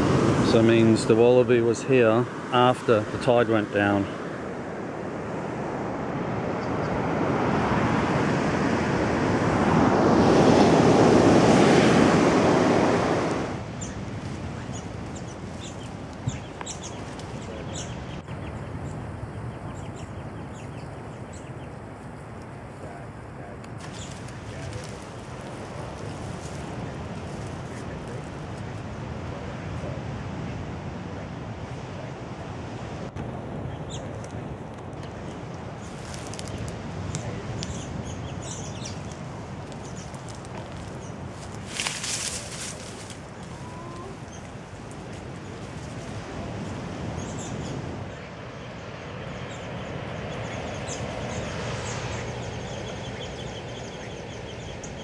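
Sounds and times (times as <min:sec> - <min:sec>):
surf rushing: 0:00.0 - 0:55.0
wind noise: 0:00.0 - 0:55.0.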